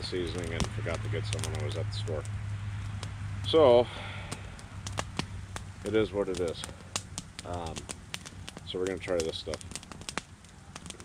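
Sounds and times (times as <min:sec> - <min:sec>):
campfire crackling and popping: 0:00.0 - 0:11.0.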